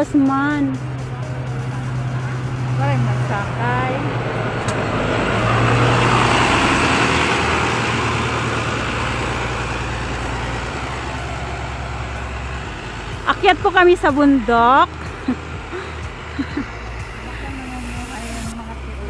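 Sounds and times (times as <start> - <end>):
bus engine humming: 0.0 - 19.0
tyre and road noise: 0.0 - 19.0.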